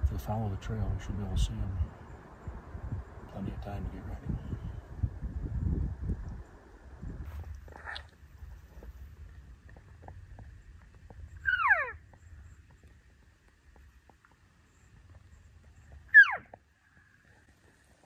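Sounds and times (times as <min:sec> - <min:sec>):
faint low rumble: 0:00.0 - 0:18.0
elk call mews: 0:11.4 - 0:12.0, 0:16.1 - 0:16.6.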